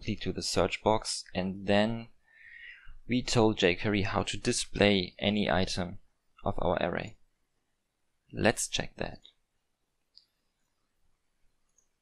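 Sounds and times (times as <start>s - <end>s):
person speaking: 0.0s - 7.2s, 8.3s - 9.3s.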